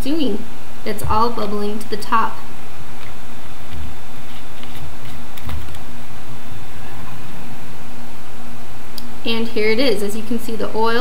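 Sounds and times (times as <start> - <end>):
background hum: 0.0 - 11.0.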